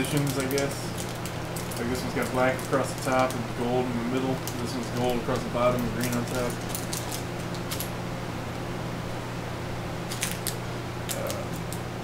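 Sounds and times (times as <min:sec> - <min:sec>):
plastic bags rustling: 0:00.0 - 0:07.9.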